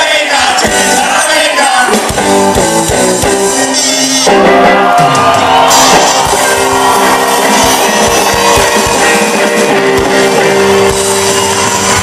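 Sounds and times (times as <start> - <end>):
drums: 0.0 - 12.0
electric guitars: 0.3 - 12.0
bass guitar: 0.5 - 1.2, 1.8 - 12.0.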